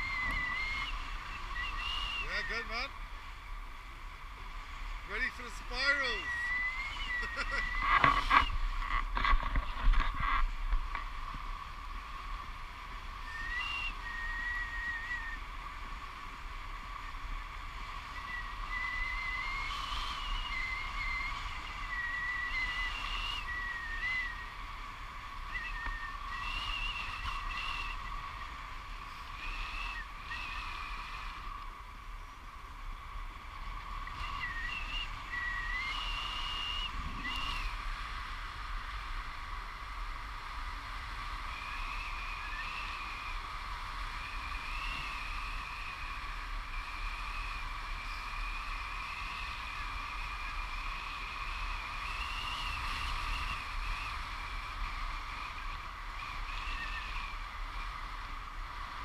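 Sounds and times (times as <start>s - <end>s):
thin wavering whistle: 0.0s - 2.8s, 5.1s - 8.8s, 13.1s - 15.5s, 17.8s - 31.6s, 34.0s - 37.8s, 41.3s - 58.0s
wind noise with low rumble: 0.0s - 59.0s.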